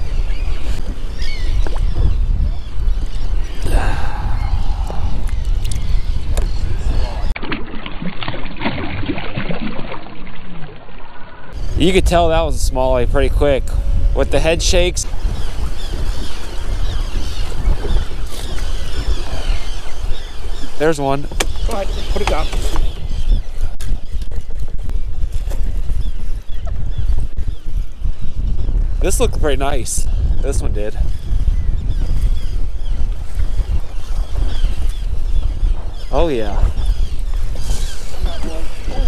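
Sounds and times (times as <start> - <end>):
wind buffeting microphone: 0.0 - 7.4, 11.5 - 39.0.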